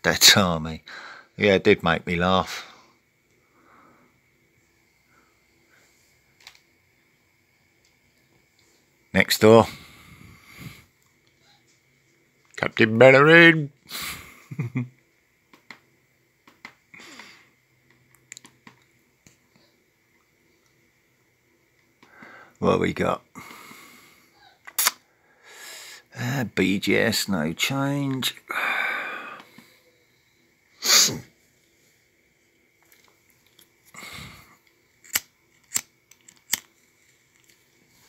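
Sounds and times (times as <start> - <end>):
man exhaling and grunting: 28.5 - 29.5
person sneezing: 30.8 - 31.3.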